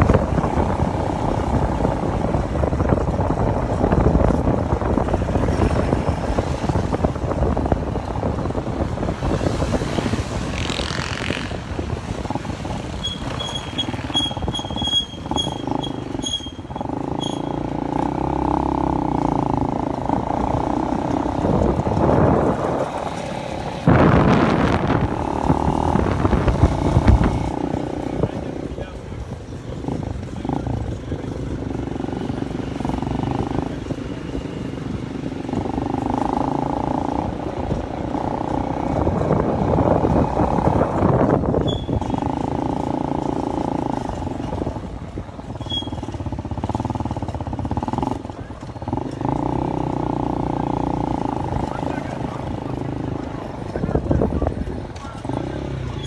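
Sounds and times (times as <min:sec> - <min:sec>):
street noise: 0:00.0 - 0:56.0
people's voices: 0:48.1 - 0:56.0.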